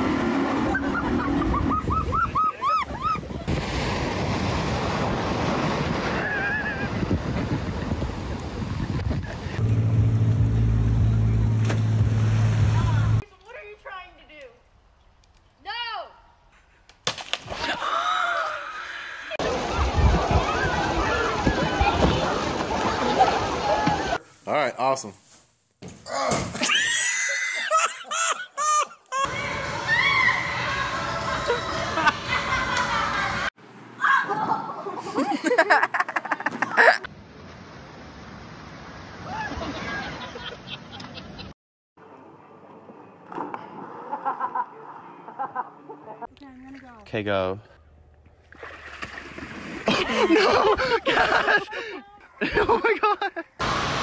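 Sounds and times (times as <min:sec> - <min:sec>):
loud splash into water: 0:03.5 - 0:07.0
water sloshing and splashing: 0:19.4 - 0:24.2, 0:48.2 - 0:51.5
body splashing into pool: 0:48.4 - 0:50.9.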